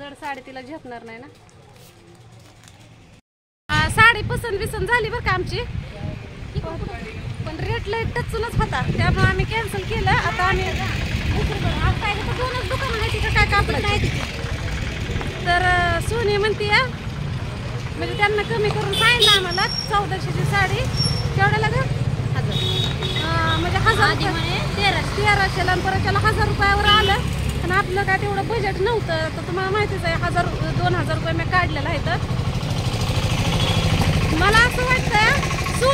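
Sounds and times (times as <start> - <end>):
low rumble of street noise: 0.0 - 35.9
woman talking: 3.7 - 5.7, 6.6 - 14.2, 15.4 - 17.0, 18.0 - 22.6, 23.2 - 32.3, 34.3 - 35.9.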